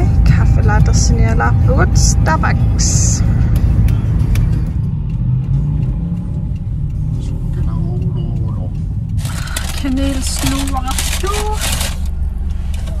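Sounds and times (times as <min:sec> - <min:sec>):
car engine: 0:00.0 - 0:13.0
road noise in moving car: 0:00.0 - 0:13.0.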